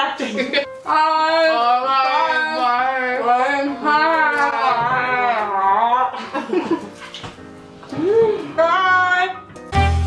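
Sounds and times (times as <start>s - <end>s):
woman humming: 7.9s - 8.6s.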